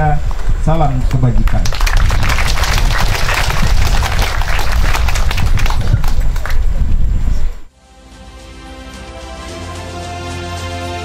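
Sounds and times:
audience applauding: 1.5 - 6.7.

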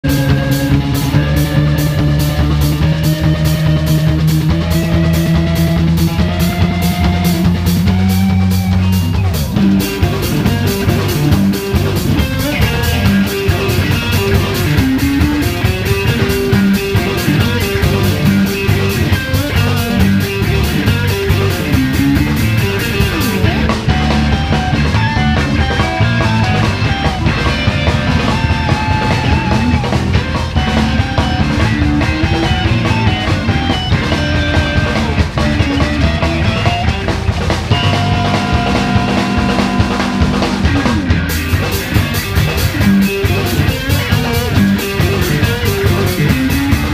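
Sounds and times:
live rock band playing: 0.0 - 46.9.

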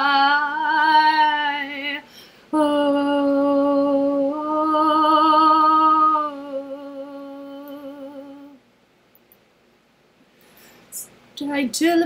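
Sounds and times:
woman humming with vibrato: 2.6 - 8.6.

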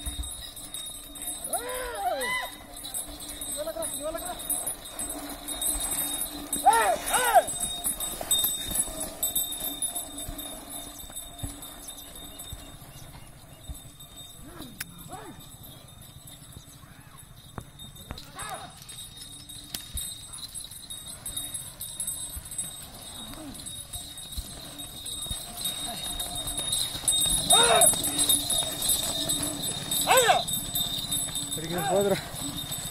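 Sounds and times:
bull hoofbeats on dirt: 0.0 - 32.9
men shouting: 6.6 - 7.5, 27.4 - 28.3, 30.0 - 30.6.

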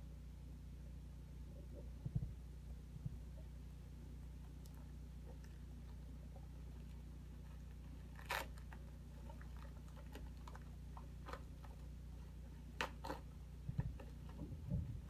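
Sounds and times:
steady low hum: 0.0 - 15.0
bubble wrap crinkling: 5.5 - 14.4.

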